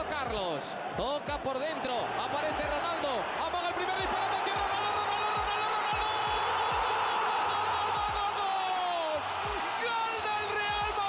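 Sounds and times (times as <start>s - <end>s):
commentator shouting: 0.0s - 11.0s
stadium crowd cheering: 0.0s - 11.0s.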